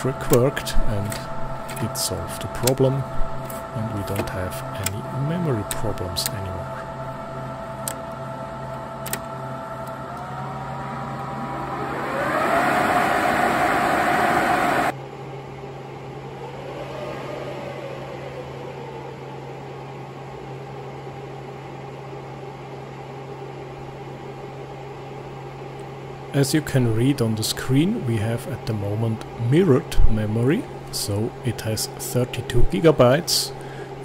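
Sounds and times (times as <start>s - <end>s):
server cooling fans whirring: 0.0s - 34.0s.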